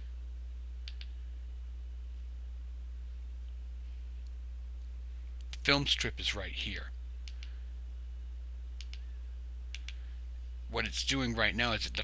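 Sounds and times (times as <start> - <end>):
low electrical hum: 0.0 - 12.0
small button clicks: 0.8 - 1.1, 7.2 - 7.6, 8.8 - 9.1, 9.7 - 10.0.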